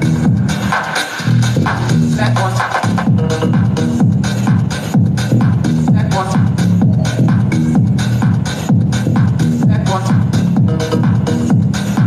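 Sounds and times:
techno dance track: 0:00.0 - 0:12.0.

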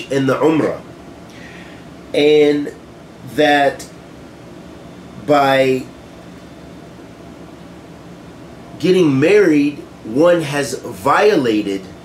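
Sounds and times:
faint low hum: 0:00.0 - 0:12.0
steady background hiss: 0:00.0 - 0:12.0.

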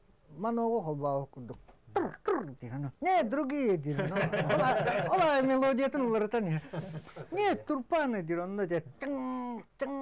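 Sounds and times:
man speaking: 0:00.4 - 0:10.0.

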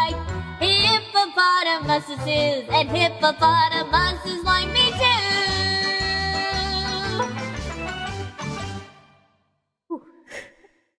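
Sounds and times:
backing music: 0:00.0 - 0:09.2.

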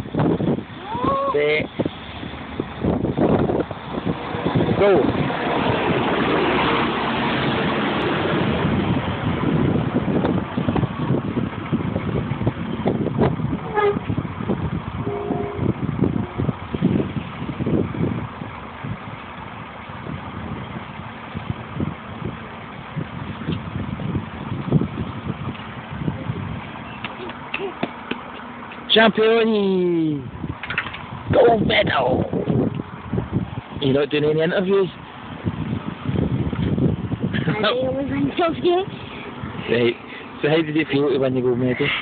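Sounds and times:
bus engine driving off: 0:00.0 - 0:42.0.

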